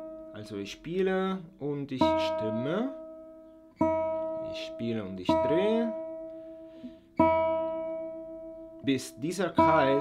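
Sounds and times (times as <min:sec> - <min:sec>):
guitar string plucked and ringing: 0:00.0 - 0:10.0.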